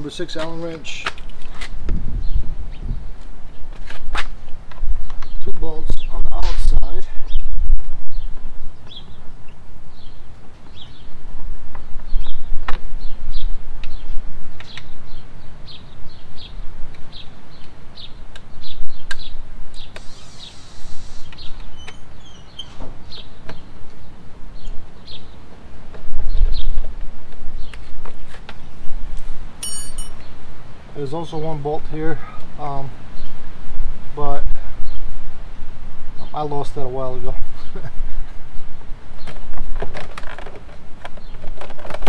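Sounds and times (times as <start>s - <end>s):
wind rumble on microphone: 1.1s - 30.9s, 31.8s - 42.0s
small birds chirping: 2.1s - 35.3s, 36.1s - 42.0s.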